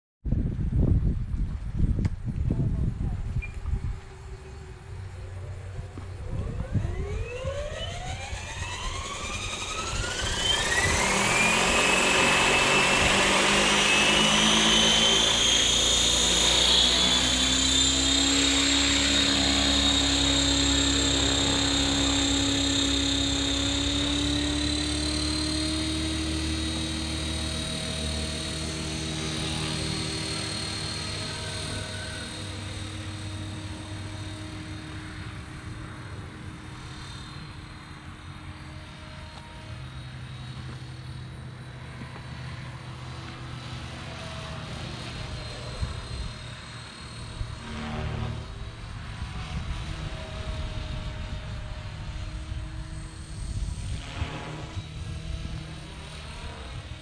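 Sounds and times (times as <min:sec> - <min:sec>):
rc helicopter motor whine: 0:01.4 - 0:57.0.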